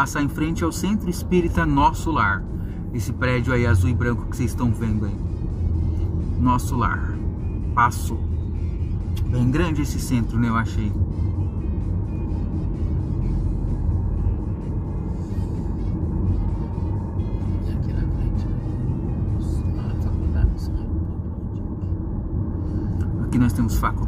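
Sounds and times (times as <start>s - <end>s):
car cabin road rumble: 0.0s - 24.0s
faint music: 0.0s - 24.0s.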